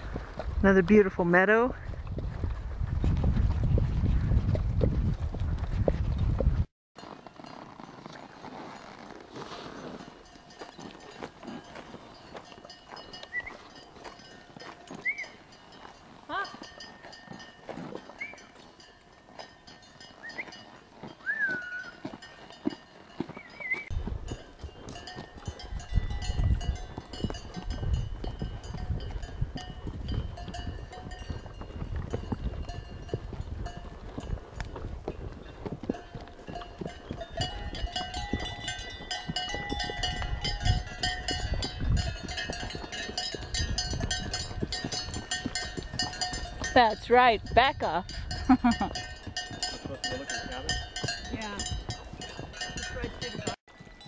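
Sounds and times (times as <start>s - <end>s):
horse hoofbeats on trail: 0.0s - 54.0s.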